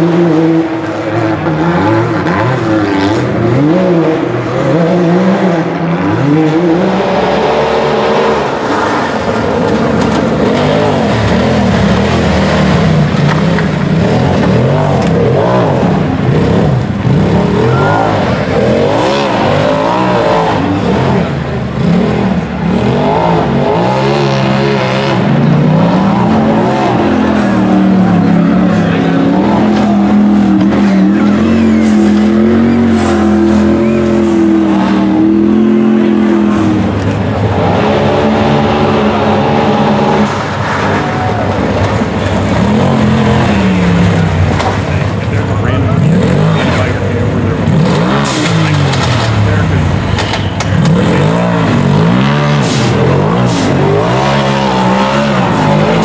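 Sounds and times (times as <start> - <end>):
engine revving on hill climb: 0.0 - 56.0.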